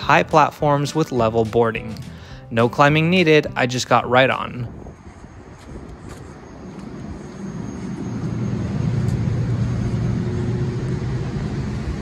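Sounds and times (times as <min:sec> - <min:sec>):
faint high whine: 0:04.8 - 0:12.0
train equipment humming: 0:05.0 - 0:12.0.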